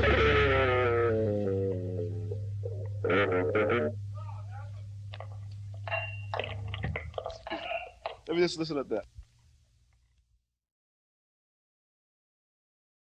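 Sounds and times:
rock music held note sliding down: 0:00.0 - 0:04.2
voices in small room: 0:00.0 - 0:09.7
low electrical hum: 0:00.0 - 0:10.5.

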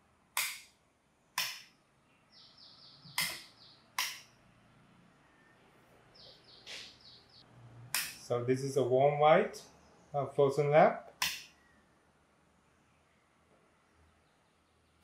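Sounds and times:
sharp clicks: 0:03.1 - 0:04.3, 0:11.1 - 0:11.6.

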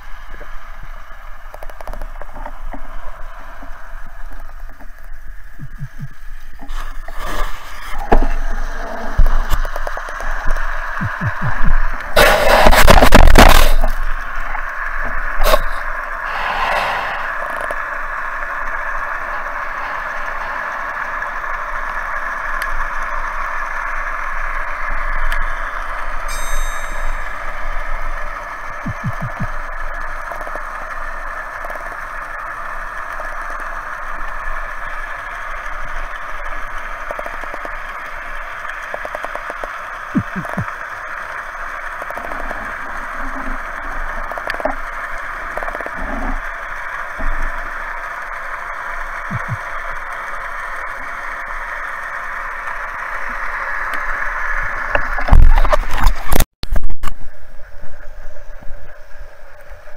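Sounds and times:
underwater hiss: 0:02.4 - 0:28.5.

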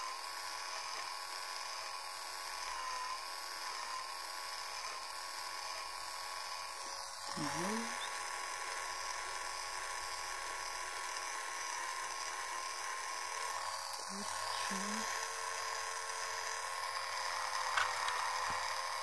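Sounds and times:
electric face brush buzzing: 0:00.0 - 0:19.0
person humming: 0:07.4 - 0:08.1, 0:14.1 - 0:15.2.

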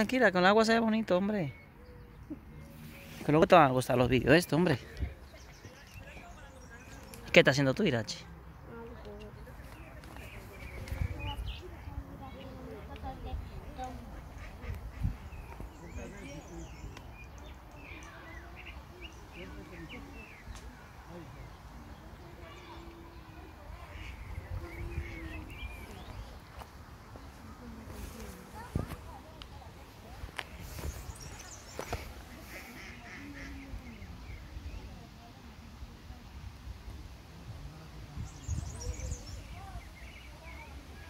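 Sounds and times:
duck quacking: 0:32.4 - 0:33.6.

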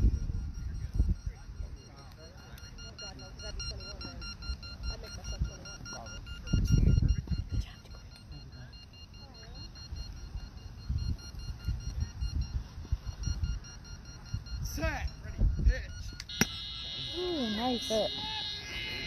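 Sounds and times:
faint voices: 0:00.0 - 0:19.0
rapid high electronic beeps: 0:00.0 - 0:19.0.

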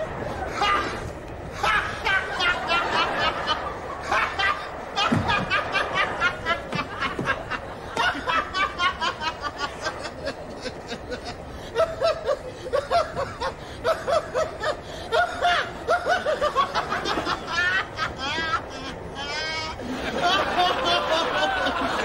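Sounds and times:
man laughing hard: 0:00.0 - 0:22.0.

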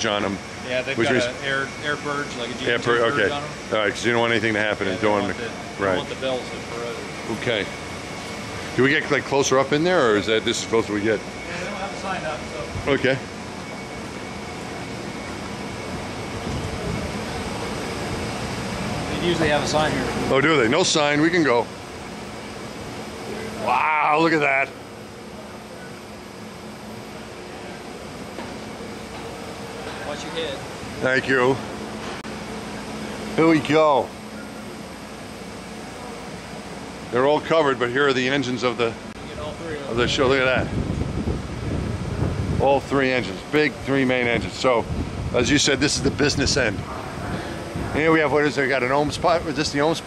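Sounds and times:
rushing air: 0:40.1 - 0:42.9, 0:44.4 - 0:48.1.

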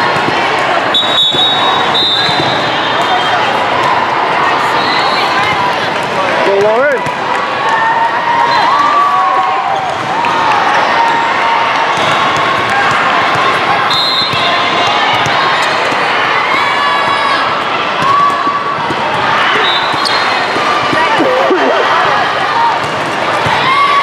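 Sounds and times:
many voices: 0:00.0 - 0:24.0
volleyballs bouncing and hit: 0:19.9 - 0:22.0.

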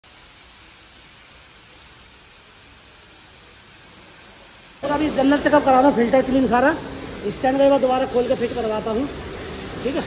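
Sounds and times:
pressure washer spraying water: 0:00.0 - 0:10.0.

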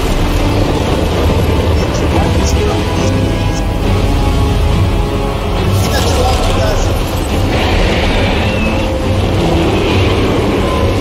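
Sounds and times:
heavy low rumble: 0:00.0 - 0:11.0.

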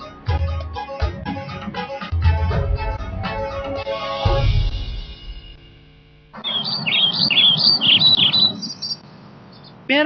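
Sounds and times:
birds chirping: 0:06.4 - 0:09.8.

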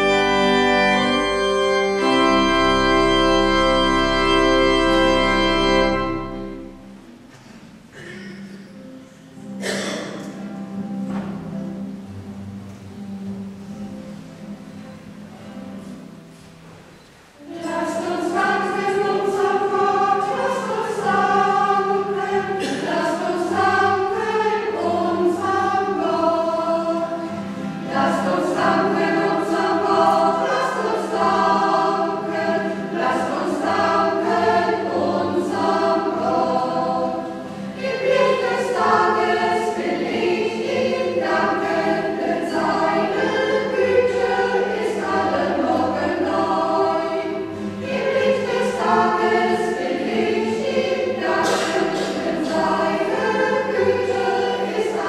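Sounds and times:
choir singing a hymn: 0:00.0 - 0:08.2, 0:09.4 - 0:10.5, 0:17.3 - 0:55.0.

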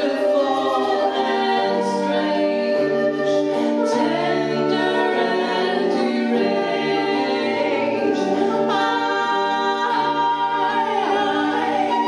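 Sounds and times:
voices singing in harmony: 0:00.0 - 0:12.0.

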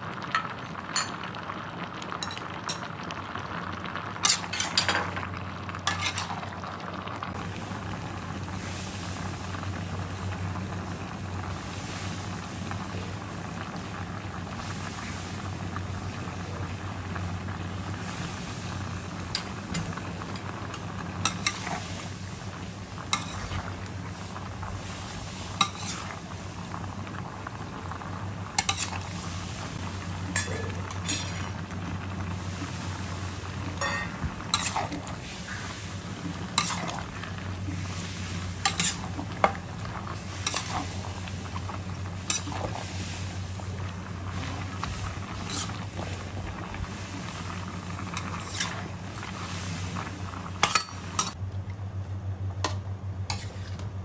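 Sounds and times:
food sizzling in wok: 0:00.0 - 0:51.4
steady low hum: 0:03.1 - 0:54.0.

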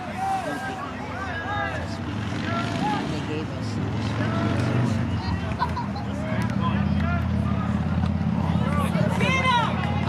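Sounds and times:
distant spectators' voices: 0:00.0 - 0:10.0.

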